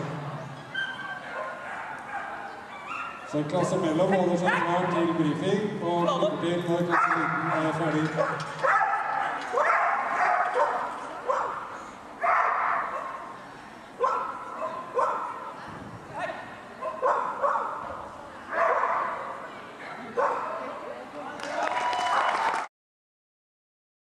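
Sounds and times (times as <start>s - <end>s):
dog barking echoing: 0.8s - 3.3s, 4.4s - 4.8s, 6.9s - 13.2s, 14.0s - 15.5s, 16.8s - 17.8s, 18.5s - 19.3s, 20.2s - 20.6s.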